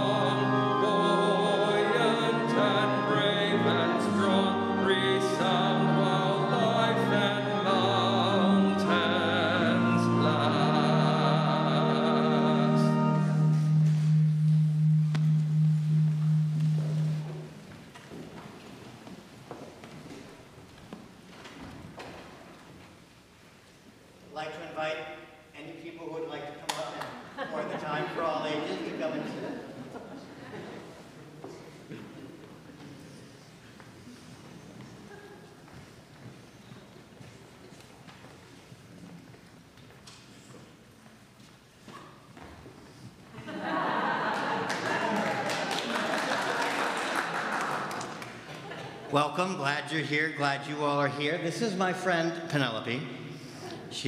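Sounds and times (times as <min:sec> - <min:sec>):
low organ note: 0:00.0 - 0:17.8.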